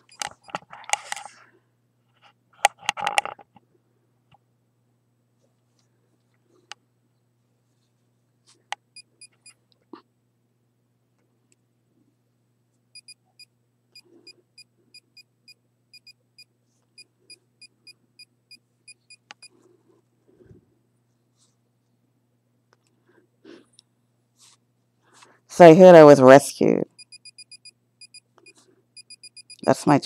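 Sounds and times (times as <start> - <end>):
meter beeping: 27.0 - 28.3, 29.0 - 29.7.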